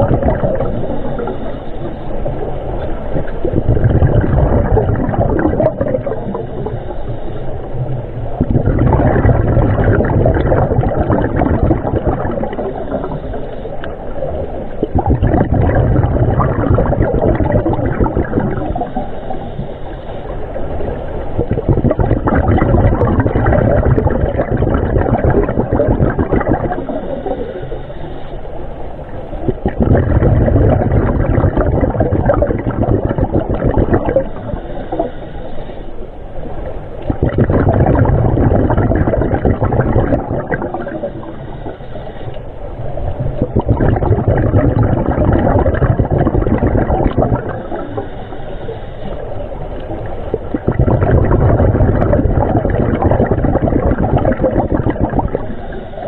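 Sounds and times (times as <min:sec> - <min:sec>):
underwater bubbles and regulator breathing: 0:00.0 - 0:56.0.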